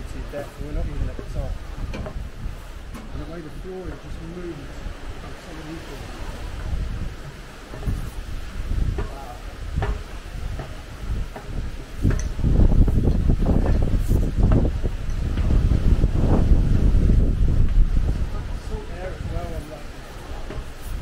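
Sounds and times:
wind buffeting microphone: 0.0s - 21.0s
footsteps knocking on stair treads: 8.8s - 12.2s.

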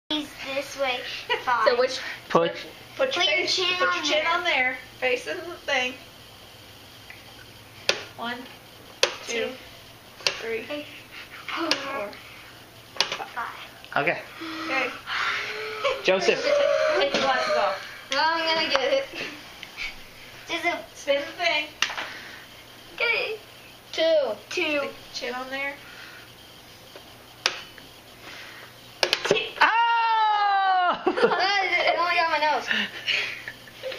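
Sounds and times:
loud long shriek: 14.5s - 18.0s.

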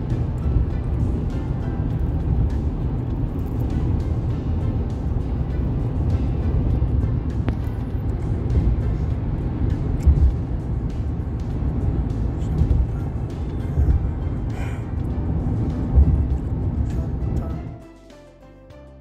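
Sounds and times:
low bump: 0.0s - 17.7s
music playing: 0.0s - 19.0s
road and engine rumble: 0.0s - 19.0s.

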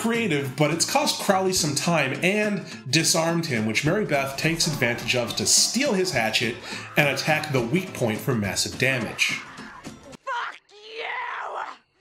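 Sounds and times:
person yelling: 9.4s - 11.8s.

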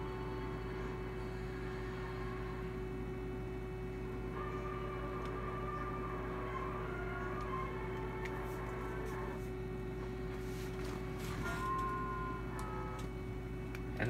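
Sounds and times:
faint tune: 0.0s - 14.0s
steady electrical hum: 0.0s - 14.0s.

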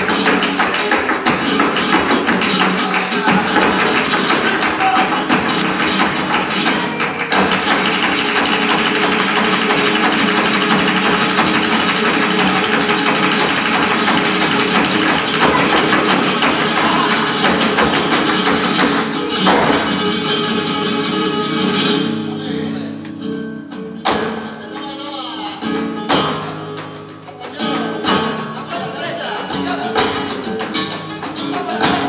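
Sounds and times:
dancer's footwork strikes: 0.0s - 20.3s, 24.0s - 24.6s, 26.0s - 28.4s
rhythmic hand-clapping: 0.0s - 21.4s, 24.0s - 32.0s
flamenco guitar: 0.0s - 32.0s.

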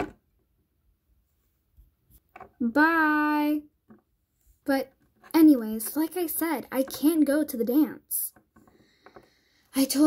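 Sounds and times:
person speaking: 4.6s - 8.4s.

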